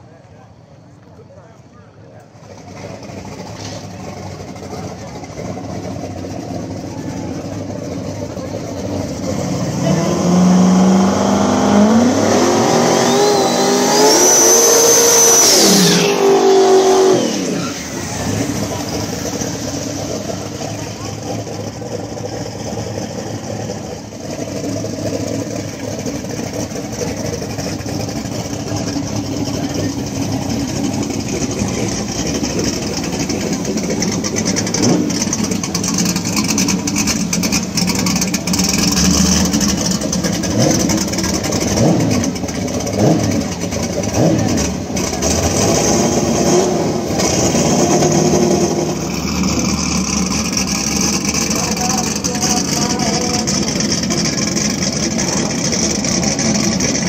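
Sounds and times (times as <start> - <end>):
drag car engine revving: 0.0 - 57.0
high engine whine: 0.0 - 57.0.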